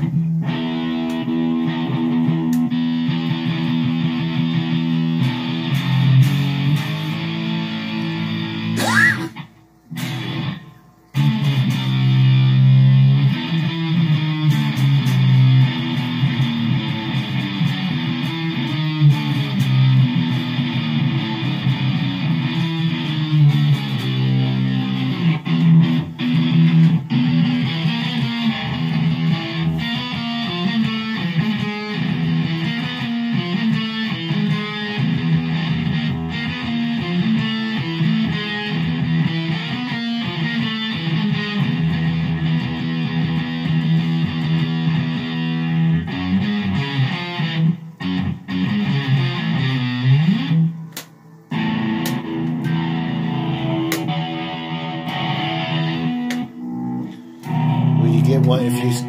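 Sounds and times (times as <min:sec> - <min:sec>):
electric guitar riffs: 0:00.0 - 0:59.0.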